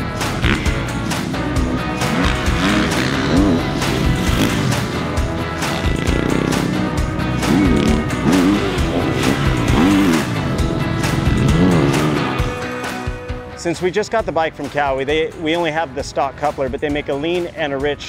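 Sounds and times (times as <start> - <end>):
motorcycle engine revving: 0.0 - 12.8
background music: 0.0 - 18.0.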